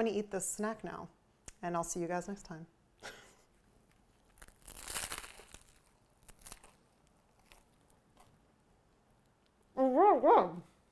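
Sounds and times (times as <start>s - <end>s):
soft chewing crunches: 3.8s - 9.6s.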